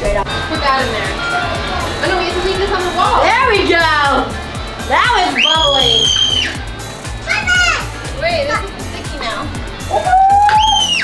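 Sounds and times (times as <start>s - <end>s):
music with steady beat: 0.0s - 11.0s
children's voices and squeals: 7.2s - 8.0s.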